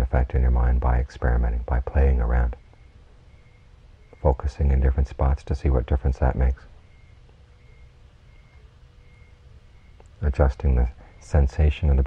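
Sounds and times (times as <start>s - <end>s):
faint steady hum: 0.0s - 12.0s
low rumble: 0.0s - 12.0s.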